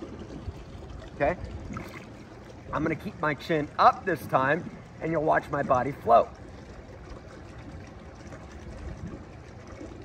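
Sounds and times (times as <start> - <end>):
pool water noise: 0.0 - 10.0.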